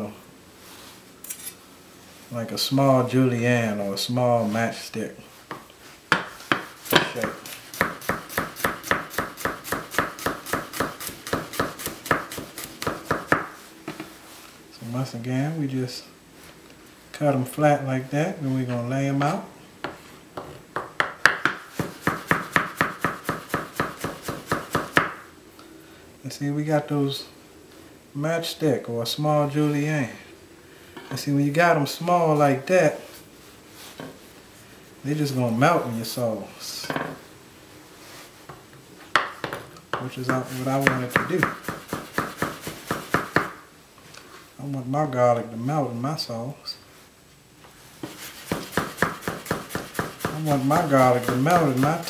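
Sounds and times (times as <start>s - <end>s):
knife chopping on plastic board: 6.1s - 13.5s, 20.8s - 25.2s, 40.3s - 43.6s, 48.4s - 52.0s.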